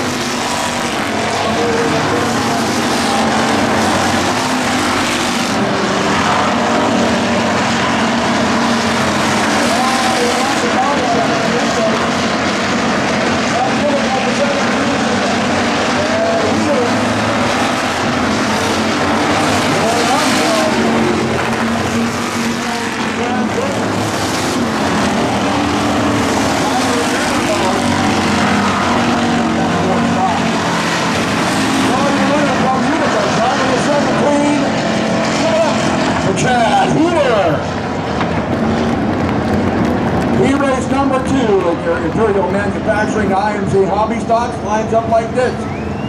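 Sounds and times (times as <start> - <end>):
race car engines passing: 0.0 - 46.0.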